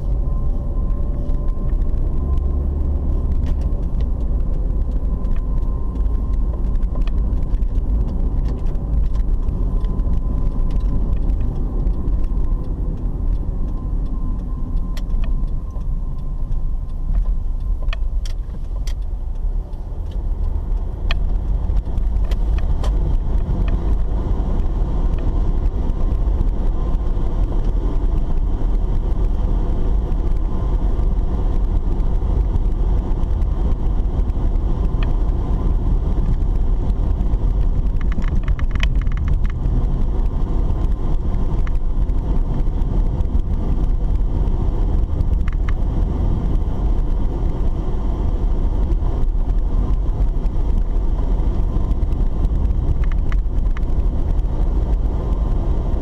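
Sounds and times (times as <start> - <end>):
car engine and road rumble: 0.0 - 56.0.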